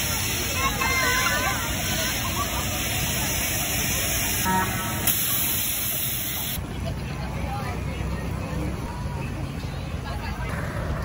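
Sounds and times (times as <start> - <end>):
fairground ride machinery rumbling: 0.0 - 11.0.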